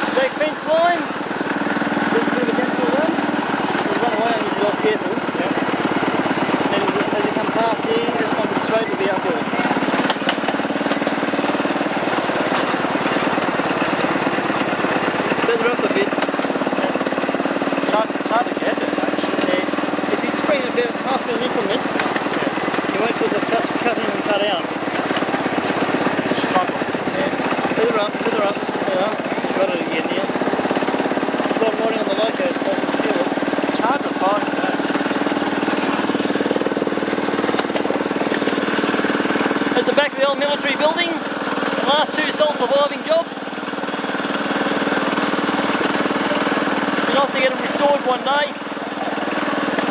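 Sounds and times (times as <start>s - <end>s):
miniature locomotive running: 0.0s - 49.9s.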